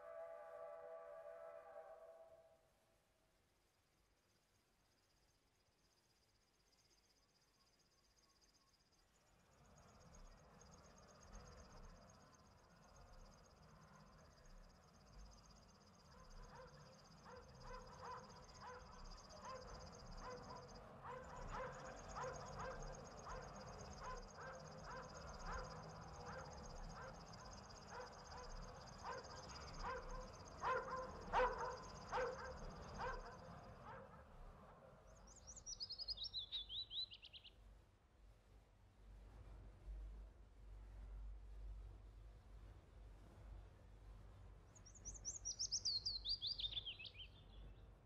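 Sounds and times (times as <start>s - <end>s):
bird chirping trill: 21.4s - 33.4s, 35.1s - 37.5s, 44.8s - 47.8s.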